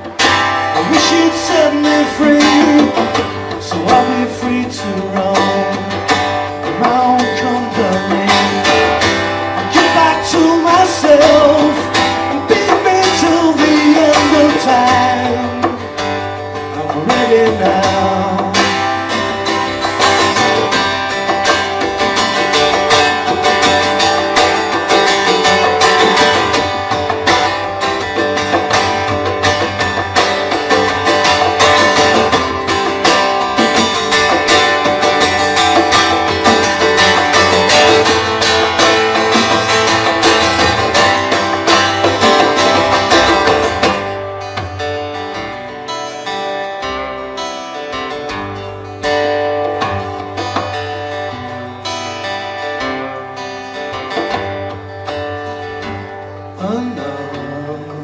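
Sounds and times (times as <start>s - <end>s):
cajon and hand drum beat: 0.0s - 58.0s
strummed acoustic guitar: 0.0s - 58.0s
upright bass: 0.0s - 58.0s.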